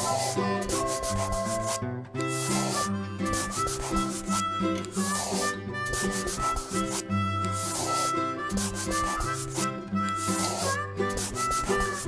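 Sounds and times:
light background music: 0:00.0 - 0:12.0
marker scribbling: 0:00.0 - 0:12.0.

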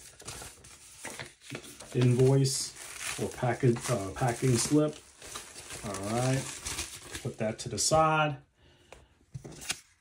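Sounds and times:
paper and packaging rustling: 0:00.0 - 0:08.1.

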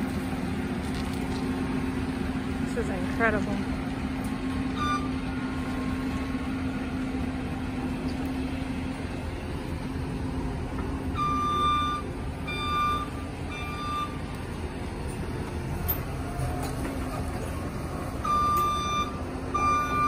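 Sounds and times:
track loader diesel engine: 0:00.0 - 0:20.0
backup alarm beeps: 0:04.7 - 0:05.6, 0:11.1 - 0:14.2, 0:18.2 - 0:20.0.

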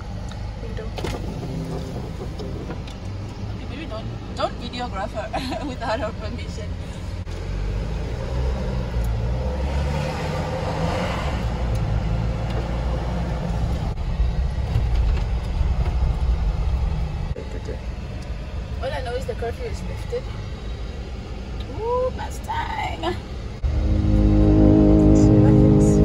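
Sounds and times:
car engine and road noise: 0:00.0 - 0:26.0.

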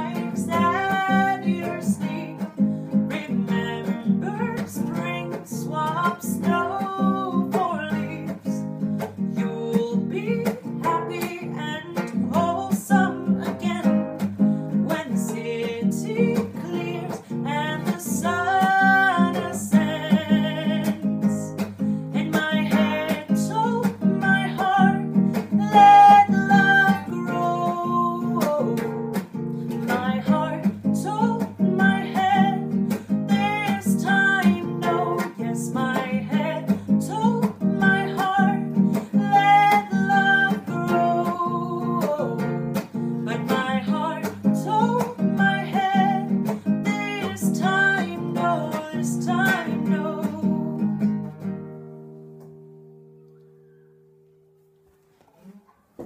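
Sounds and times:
woman singing: 0:00.0 - 0:51.4
acoustic guitar strumming: 0:00.0 - 0:56.0.

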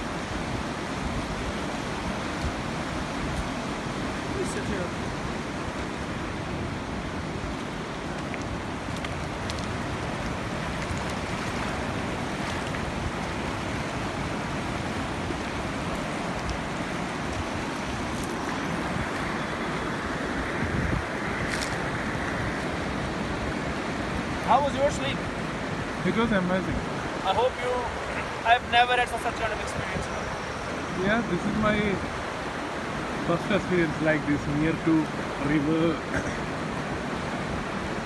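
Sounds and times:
river rushing over rocks: 0:00.0 - 0:38.0.

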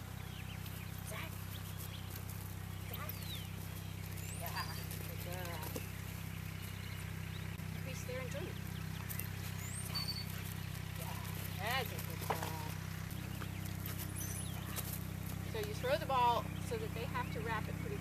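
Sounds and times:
bird chirps: 0:00.0 - 0:18.0
steady low hum: 0:00.0 - 0:18.0
woman's voice: 0:01.0 - 0:01.4, 0:04.3 - 0:05.8, 0:07.8 - 0:08.6, 0:11.0 - 0:12.8, 0:15.5 - 0:18.0.

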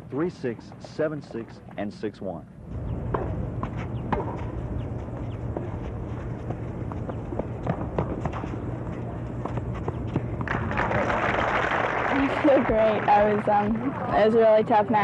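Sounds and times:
steady low hum: 0:00.0 - 0:15.0
tennis ball strikes: 0:03.1 - 0:04.6.

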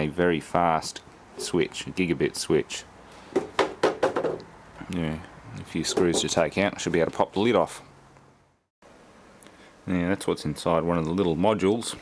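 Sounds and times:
man speaking: 0:00.0 - 0:02.9, 0:04.8 - 0:07.9, 0:09.9 - 0:12.0.

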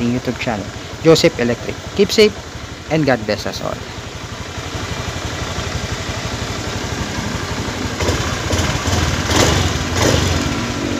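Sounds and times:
scooter engine idling: 0:00.0 - 0:10.9.

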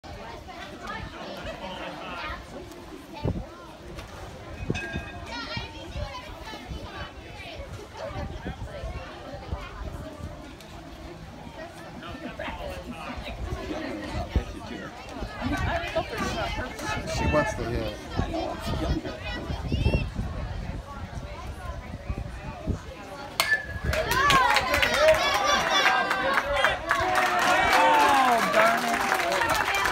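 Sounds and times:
chatter of voices: 0:00.0 - 0:29.9
bat cracking against ball: 0:23.4 - 0:24.4.

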